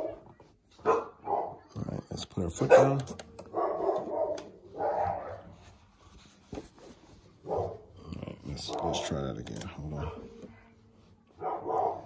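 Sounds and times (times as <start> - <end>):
dog barking: 0.8 - 1.7, 2.6 - 5.6, 7.4 - 7.9, 11.4 - 12.0.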